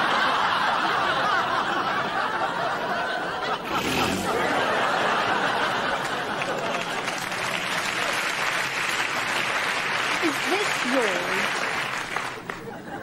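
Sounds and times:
audience laughing: 0.0s - 13.0s.

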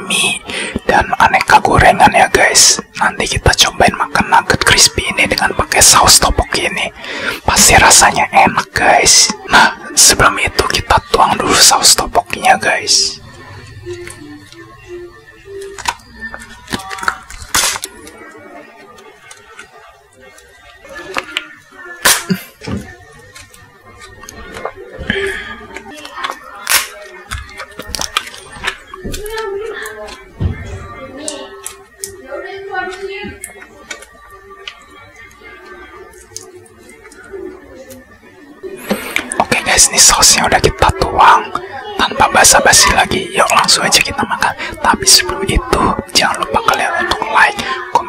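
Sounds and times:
plastic sachet crinkling and tearing: 15.6s - 18.1s.

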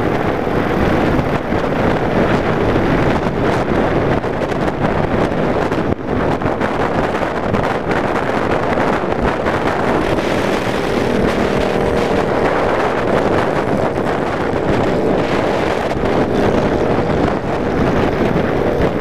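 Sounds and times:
motorcycle engine running: 0.0s - 19.0s
wind buffeting microphone: 0.0s - 19.0s.

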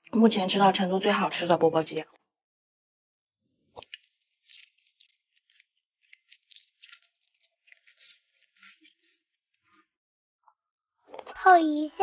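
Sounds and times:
wet chewing mouth clicks: 3.8s - 9.0s.

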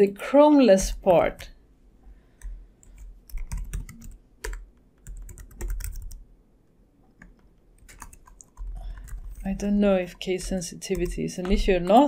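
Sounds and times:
typing on computer keyboard: 2.4s - 6.2s, 7.2s - 12.0s.

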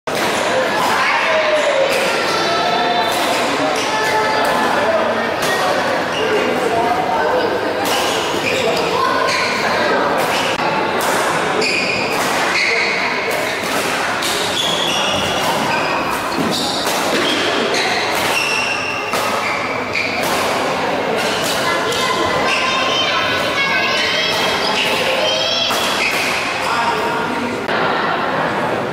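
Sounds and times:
chatter of voices: 0.1s - 28.9s
rackets striking shuttlecock: 13.2s - 21.7s, 25.7s - 26.5s
racket striking shuttlecock: 20.2s - 21.6s, 25.7s - 26.5s.

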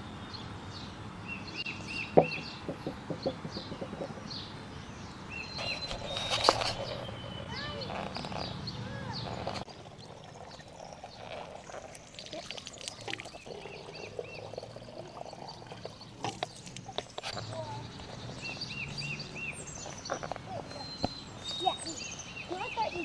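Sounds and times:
short chirping calls: 1.3s - 23.0s
water running into plastic bottle: 9.7s - 17.2s.

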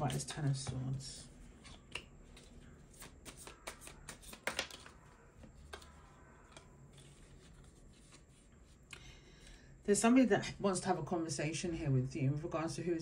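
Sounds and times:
cards being shuffled: 0.0s - 8.8s.

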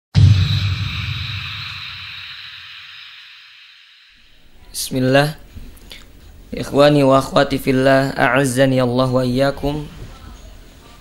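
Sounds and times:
low rumble: 0.2s - 4.3s
hiss: 0.6s - 4.3s.

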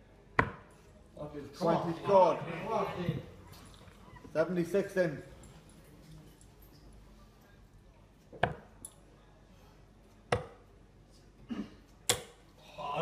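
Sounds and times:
darts striking dartboard: 0.4s - 0.7s, 8.4s - 8.7s, 10.3s - 10.6s.

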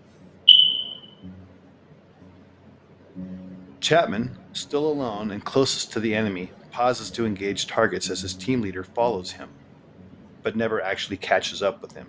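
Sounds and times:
high-pitched ping: 0.5s - 1.4s.

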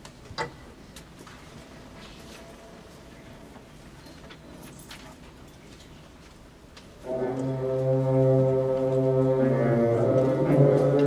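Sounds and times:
concert band holding a chord: 7.0s - 11.0s.

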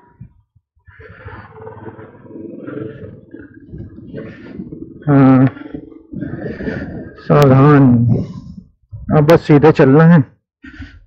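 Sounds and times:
motorcycle engine exhaust rumble: 0.0s - 9.1s.

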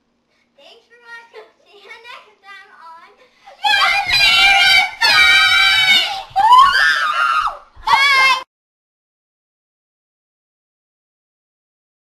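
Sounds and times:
girls screaming: 3.6s - 8.5s.

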